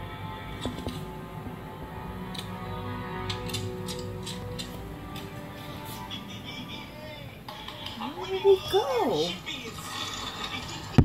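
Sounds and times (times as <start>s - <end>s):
television music: 0.0s - 11.0s.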